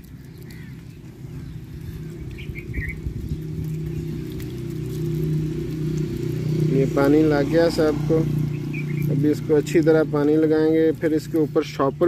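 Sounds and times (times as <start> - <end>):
water trickling onto soil: 0.0 - 12.0.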